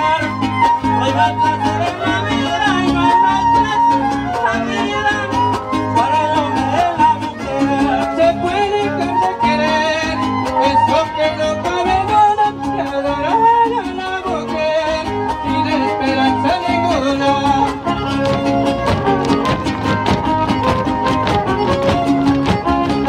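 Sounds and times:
strummed guitars: 0.0s - 23.0s
violin melody: 0.0s - 23.0s.

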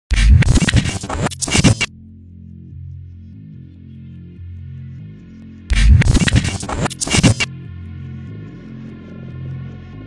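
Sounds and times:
distorted digital glitch stutters: 0.1s - 1.9s, 5.7s - 7.5s.

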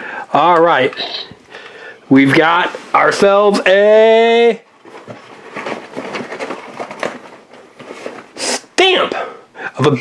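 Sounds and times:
rustling inside fabric backpack: 4.7s - 8.5s.

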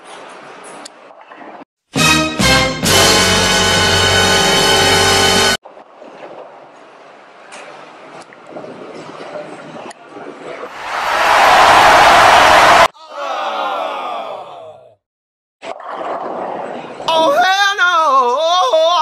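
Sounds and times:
loud rush of noise: 10.7s - 12.9s.

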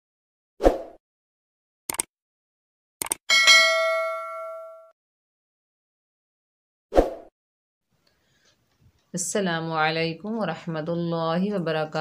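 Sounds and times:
notification bell ding: 3.3s - 4.9s.

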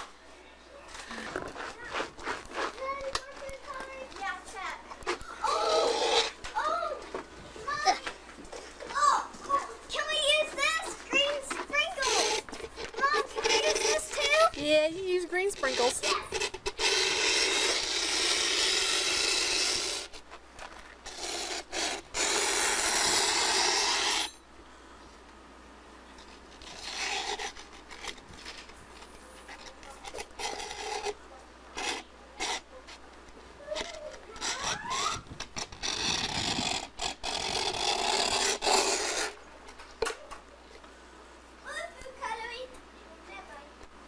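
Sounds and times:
rasping scrapes and rubs: 1.0s - 6.8s, 9.5s - 24.4s, 26.2s - 33.1s, 33.7s - 39.4s.

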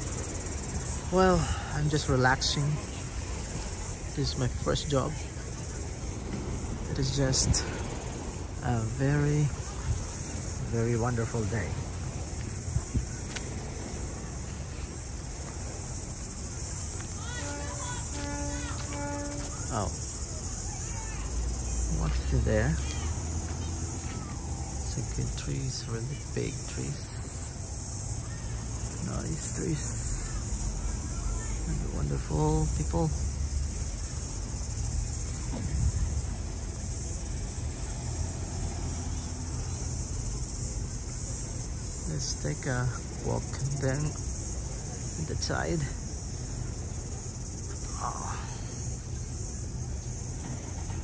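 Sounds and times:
insects buzzing in trees: 0.0s - 51.0s
road traffic rumble: 0.0s - 51.0s
wind: 0.0s - 51.0s.

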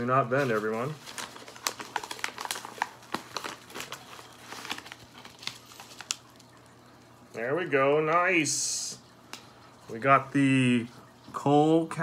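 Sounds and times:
paper envelope crinkling: 0.0s - 7.0s.

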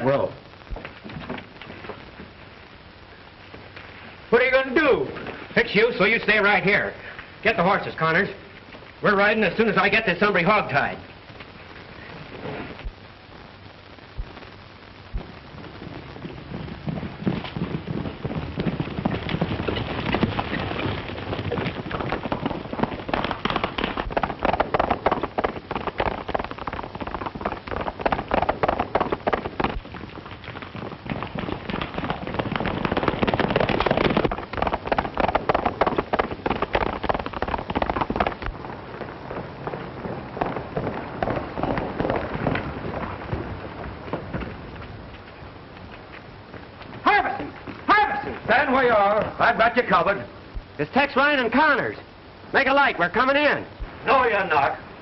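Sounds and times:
horse hooves galloping: 0.0s - 55.0s.

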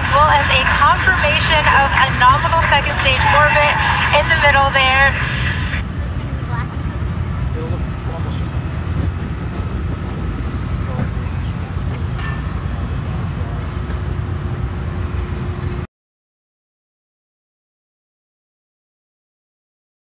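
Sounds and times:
low outdoor rumble: 0.0s - 15.9s.

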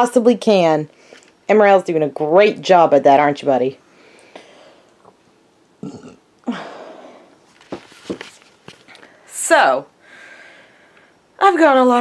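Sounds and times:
woman breathing in: 3.9s - 5.0s, 10.0s - 11.2s
woman sighing: 6.4s - 7.3s.

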